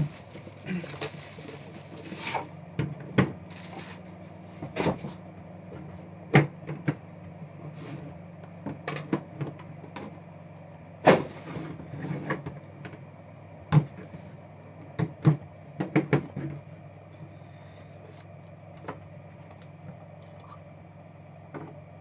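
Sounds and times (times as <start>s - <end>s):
plastic wrap crumpling: 0.0s - 2.5s, 3.5s - 4.2s
steady low hum: 0.0s - 22.0s.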